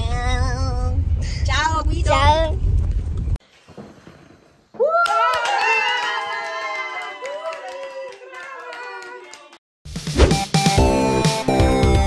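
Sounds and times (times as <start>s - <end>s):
hands clapping: 5.0s - 9.6s
music: 9.9s - 12.0s.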